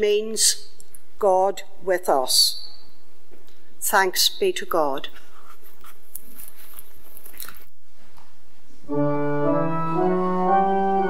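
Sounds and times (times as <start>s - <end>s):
paper rustling: 5.2s - 8.2s.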